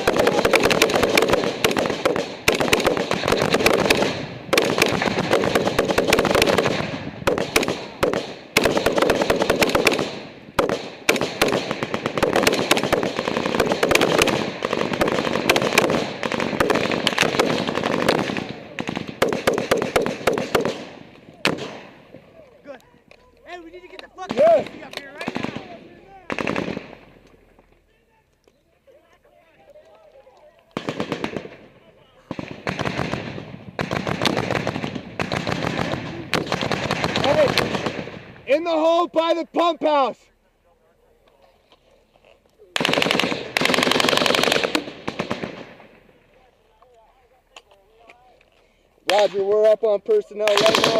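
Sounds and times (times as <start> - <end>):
rifle fire: 0.0 - 22.2, 24.3 - 27.3, 30.8 - 38.6, 42.8 - 46.2, 50.4 - 50.9.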